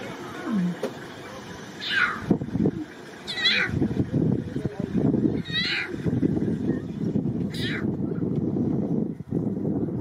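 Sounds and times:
lion cub mewing call: 1.8 - 2.3, 3.2 - 3.8, 5.4 - 6.0, 7.5 - 7.9.

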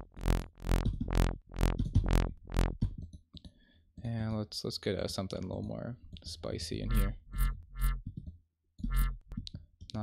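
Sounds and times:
synth bass notes: 0.0 - 3.0, 6.8 - 8.0, 8.8 - 9.4.

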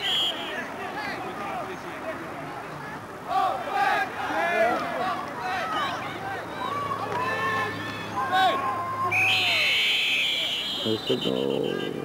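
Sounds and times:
referee's whistle blast: 0.0 - 0.6, 9.1 - 12.0
voices shouting: 0.0 - 12.0.

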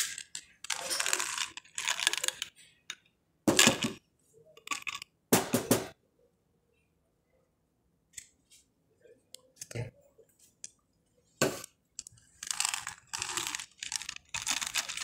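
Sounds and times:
capsules rattling in a bottle: 0.0 - 2.6, 12.0 - 15.0.

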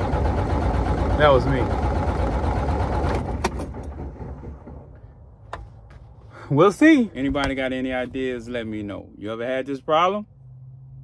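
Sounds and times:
diesel engine cranking: 0.0 - 8.6.

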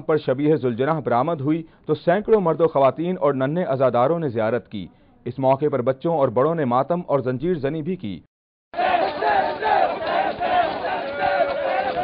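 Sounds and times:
crowd of men chanting and shouting: 8.8 - 12.0.

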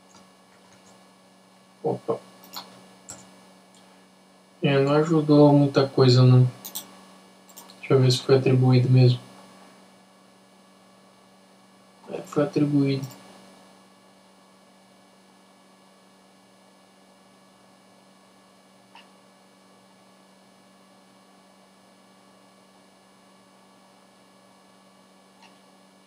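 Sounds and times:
faint electrical hum: 0.0 - 26.0.

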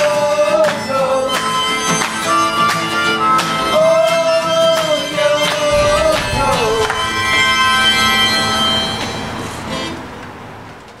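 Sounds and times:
acoustic band chord ringing: 1.3 - 10.8.

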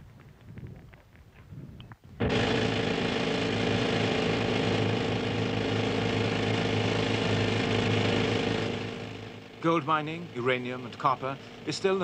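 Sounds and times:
pneumatic rock drill hammering: 2.2 - 9.6.

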